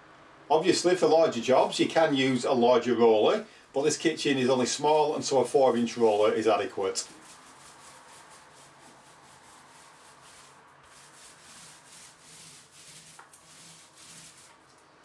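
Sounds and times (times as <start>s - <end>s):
paint roller rubbing on wallpaper: 5.3s - 14.7s.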